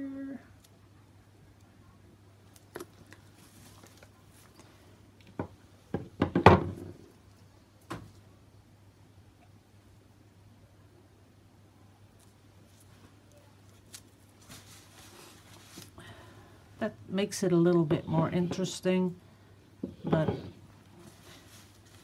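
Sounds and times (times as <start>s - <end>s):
objects knocking on worktable: 5.4s - 7.0s, 19.8s - 20.6s
handling on plastic sheeting: 12.2s - 16.0s, 21.0s - 22.0s.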